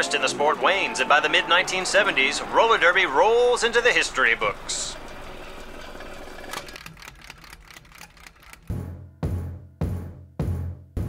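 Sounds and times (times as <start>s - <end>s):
light typewriter-like clicks: 6.5s - 8.7s.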